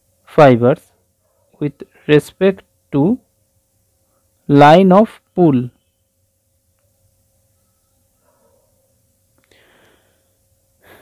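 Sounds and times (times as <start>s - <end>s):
steady low hum: 0.0s - 11.0s
faint breath: 9.4s - 11.0s.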